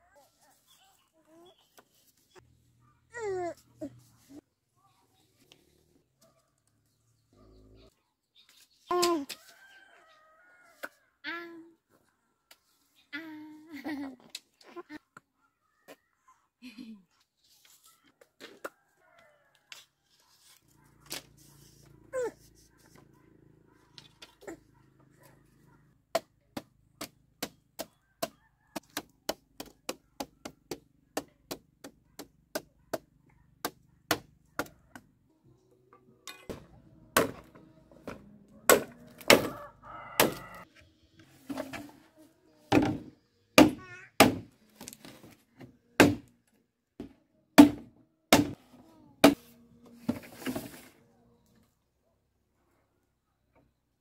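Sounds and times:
machete chopping bamboo poles: 26.1s - 34.7s, 36.5s - 39.6s, 40.2s - 40.5s, 42.7s - 44.9s, 46.0s - 46.3s, 47.0s - 48.6s, 49.2s - 49.4s.

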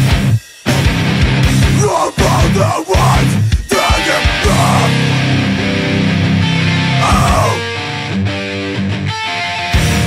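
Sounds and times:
distorted electric guitar chords: 0.0s - 10.0s
heavy metal song: 0.0s - 10.0s.

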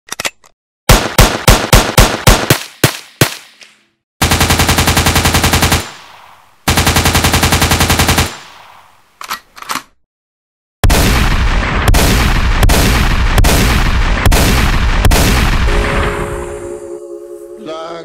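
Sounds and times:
automatic gunfire bursts: 0.9s - 2.6s, 4.2s - 6.0s, 6.7s - 8.4s
single gunshots: 10.8s - 15.7s.

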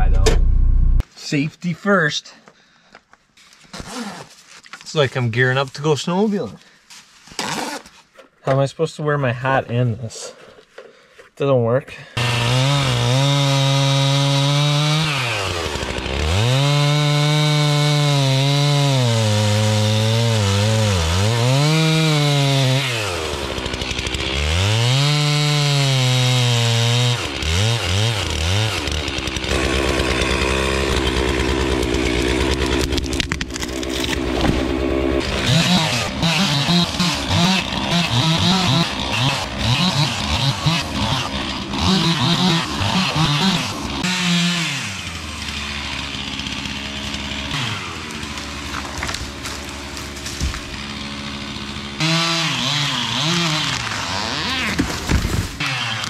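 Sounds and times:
chainsaw cutting trees: 12.2s - 56.0s.

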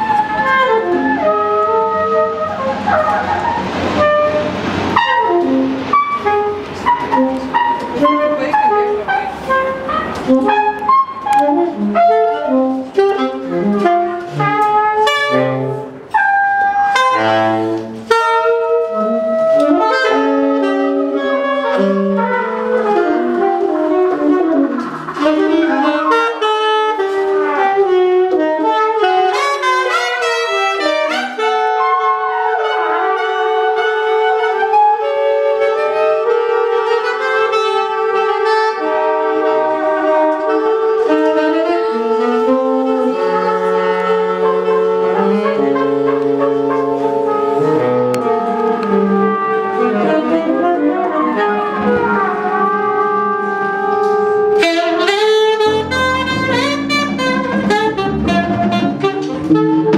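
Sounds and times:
plucked double bass: 0.0s - 31.4s, 37.6s - 59.9s
saxophones: 0.0s - 59.9s
trumpet: 0.0s - 59.9s
drum kit: 19.4s - 30.2s, 54.0s - 59.9s.

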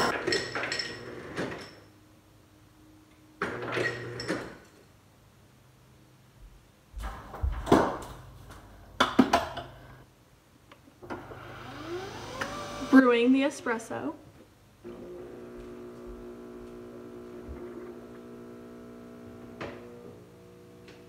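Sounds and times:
espresso machine pump whine: 11.1s - 13.0s, 14.8s - 21.0s
ice dispenser running: 11.1s - 13.0s, 14.9s - 21.0s.

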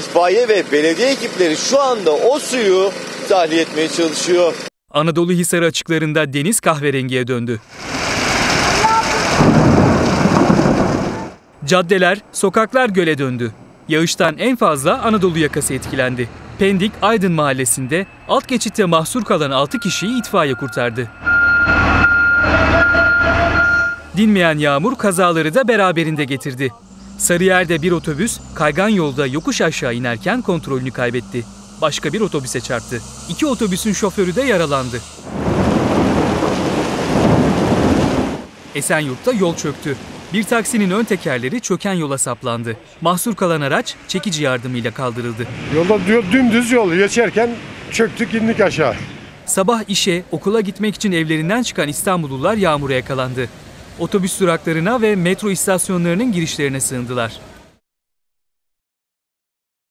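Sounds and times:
fire truck engine running: 0.0s - 4.7s
heavy rain hissing: 7.7s - 11.4s, 26.8s - 41.6s
high-pitched whine: 26.8s - 35.2s.

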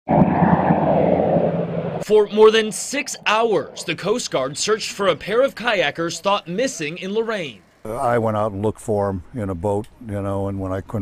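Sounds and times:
propeller aircraft droning overhead: 0.1s - 7.8s.

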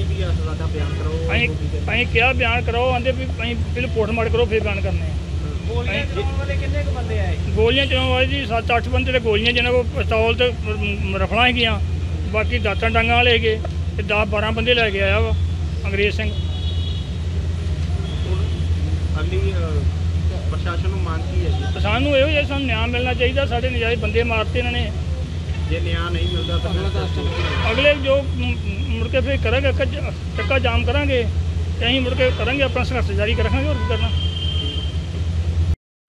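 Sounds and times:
man speaking: 0.0s - 16.4s, 18.0s - 34.2s
people talking: 0.0s - 16.4s, 17.8s - 34.2s.

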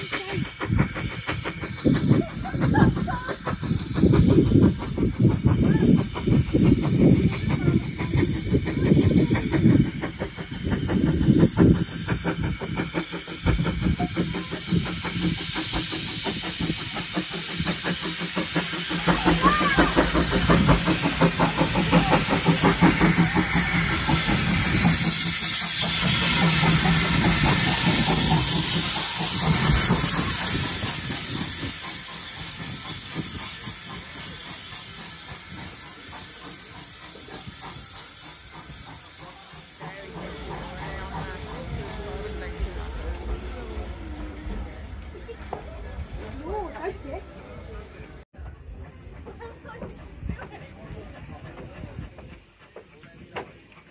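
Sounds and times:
steam locomotive hissing: 0.0s - 53.9s.

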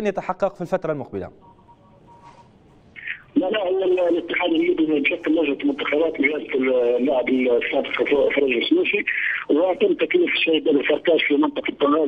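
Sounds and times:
man speaking over telephone: 3.0s - 12.0s.

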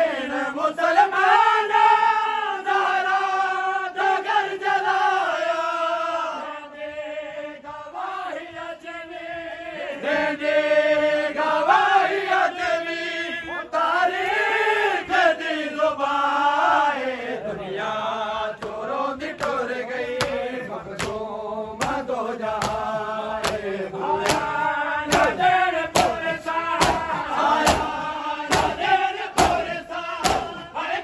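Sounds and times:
men chanting a lament: 0.0s - 31.0s.

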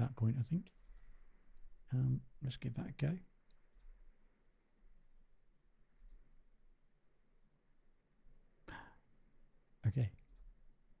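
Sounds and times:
computer mouse clicks: 0.7s - 1.0s, 3.5s - 4.0s, 6.0s - 6.3s, 10.2s - 10.6s.

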